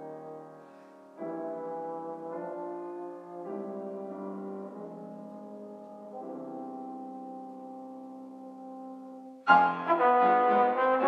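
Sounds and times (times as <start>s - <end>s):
brass instrument soft held notes: 0.0s - 11.0s
piano accompaniment: 0.0s - 11.0s.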